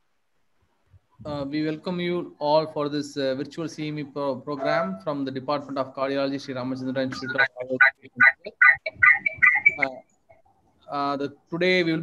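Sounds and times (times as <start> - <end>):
man speaking over video call: 1.2 - 10.0, 10.9 - 12.0.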